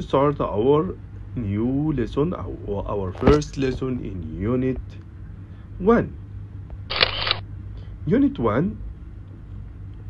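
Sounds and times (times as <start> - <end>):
camera shutter click with hiss: 6.9 - 7.4.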